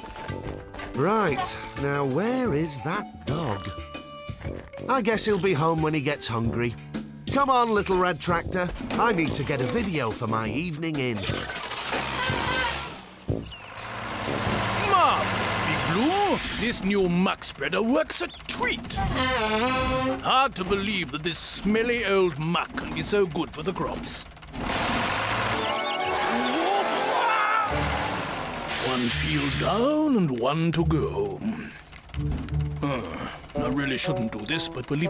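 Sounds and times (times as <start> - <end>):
background music: 0.0 - 16.1, 25.3 - 35.0
cartoon tractor engine: 0.0 - 35.0
muck spreader hissing: 13.6 - 17.5, 23.8 - 30.2.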